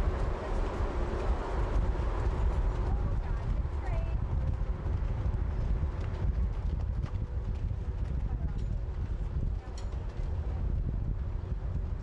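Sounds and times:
horse hoofbeats on sand: 0:00.0 - 0:10.8
steady low rumble: 0:00.0 - 0:12.0.

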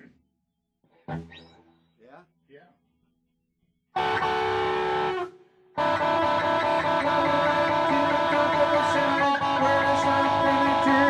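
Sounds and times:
guitar chord ringing: 0:04.0 - 0:11.0.

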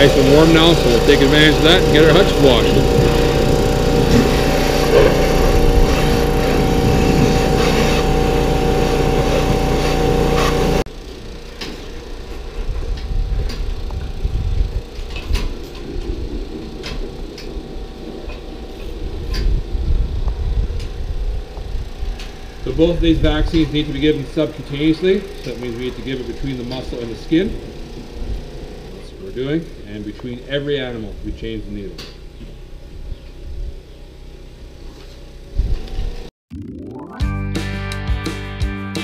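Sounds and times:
pressure washer running: 0:00.0 - 0:33.0.

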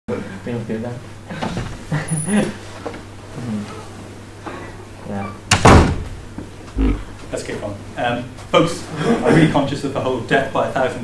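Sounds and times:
faint talk in a room: 0:00.1 - 0:11.0
door banging shut: 0:05.5 - 0:06.3.

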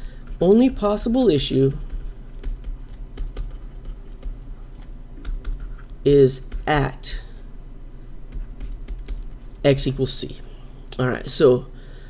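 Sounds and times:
stylus tapping on touchscreen: 0:01.8 - 0:05.9, 0:08.3 - 0:09.6.

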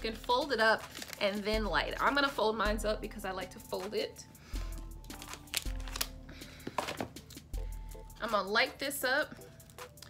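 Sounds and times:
background music with held notes: 0:00.0 - 0:10.0
paper crinkling: 0:00.8 - 0:01.4, 0:05.0 - 0:06.1.

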